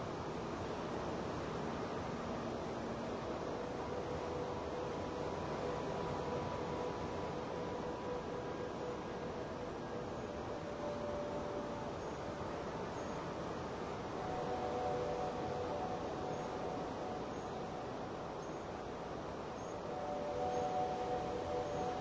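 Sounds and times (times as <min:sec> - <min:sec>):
steady hiss: 0:00.0 - 0:22.0
synthesizer ambient drone chords: 0:00.0 - 0:22.0.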